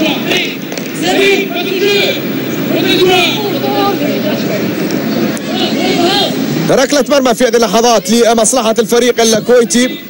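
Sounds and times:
crowd din: 0.0s - 10.0s.

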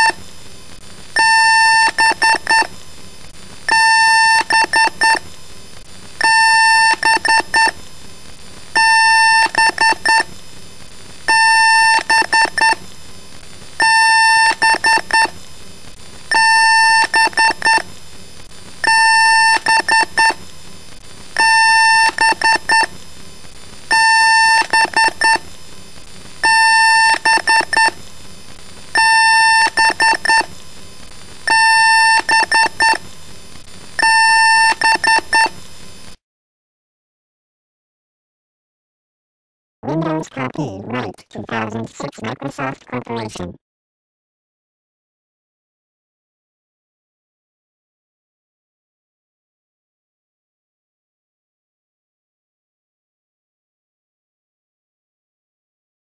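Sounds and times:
electronic beeps long and short: 1.2s - 2.7s, 3.7s - 5.2s, 6.2s - 7.8s, 8.8s - 10.3s, 11.3s - 12.8s, 13.8s - 15.3s, 16.3s - 17.8s, 18.8s - 20.4s, 21.4s - 22.9s, 23.9s - 25.4s, 26.4s - 28.0s, 29.0s - 30.5s, 31.5s - 33.0s, 34.0s - 35.6s.

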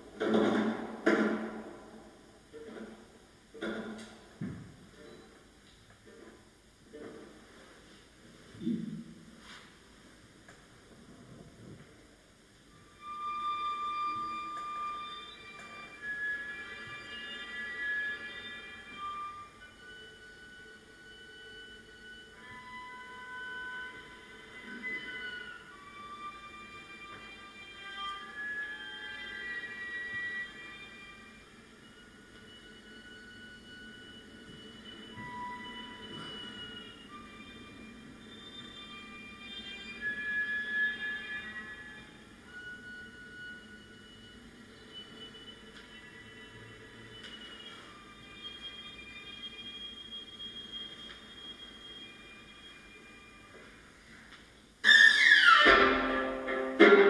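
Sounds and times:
bowed viola high sustained tones: 12.7s - 53.8s.

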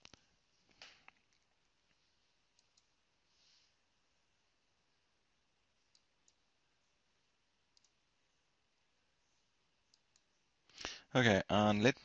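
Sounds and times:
computer mouse clicks: 0.0s - 1.6s, 2.5s - 3.0s, 5.8s - 6.5s, 7.7s - 8.0s, 9.8s - 10.4s.

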